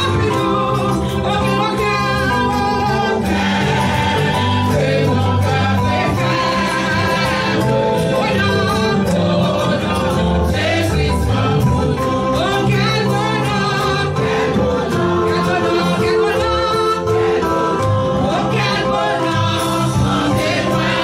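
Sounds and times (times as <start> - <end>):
instrumental accompaniment: 0.0 - 21.0
woman singing into microphone: 0.0 - 21.0.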